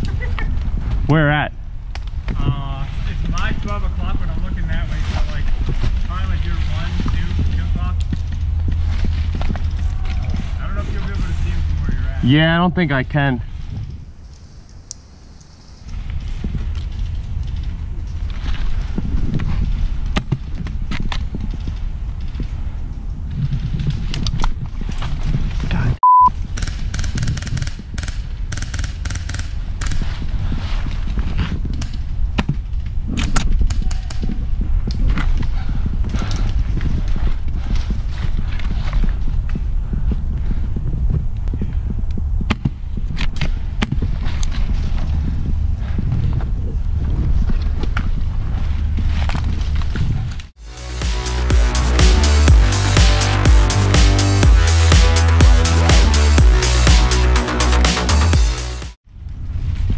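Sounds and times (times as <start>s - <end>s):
wind on microphone: 0.0s - 14.7s, 15.8s - 28.6s, 29.5s - 50.5s
brush rustling: 2.8s - 12.2s
high censor beep: 26.0s - 26.3s.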